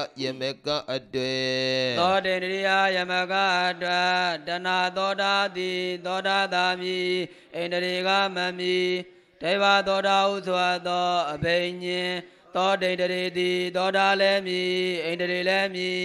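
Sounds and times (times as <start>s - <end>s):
man chanting melodically: 0.0s - 16.0s.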